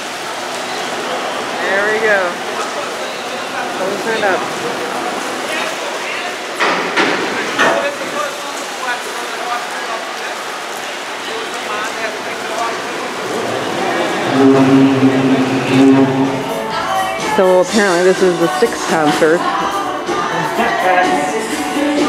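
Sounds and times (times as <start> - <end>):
indistinct voices: 11.0 - 22.0
steady low tone with overtones: 13.4 - 16.9.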